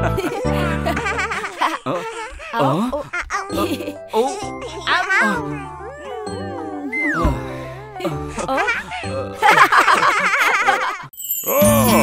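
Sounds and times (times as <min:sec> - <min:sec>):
cartoon family laughing: 0:00.0 - 0:11.1
light background music: 0:02.9 - 0:10.0.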